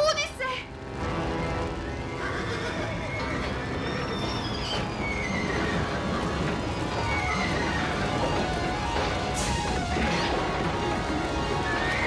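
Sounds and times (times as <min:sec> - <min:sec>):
low rumbling noise: 0:00.6 - 0:12.0
horse whinnying: 0:01.9 - 0:09.0.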